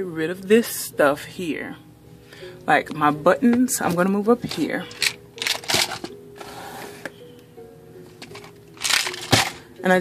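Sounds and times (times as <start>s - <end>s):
soft background music: 0.0s - 10.0s
plastic jars of buttons rattling: 4.5s - 6.1s, 8.2s - 9.6s.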